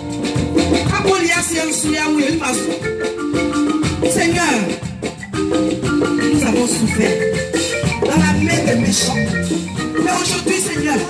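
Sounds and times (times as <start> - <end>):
worship music with mallet melody: 0.0 - 11.0
woman speaking through microphone: 0.9 - 2.7, 4.1 - 4.8, 6.3 - 7.2, 8.0 - 9.4, 10.0 - 11.0.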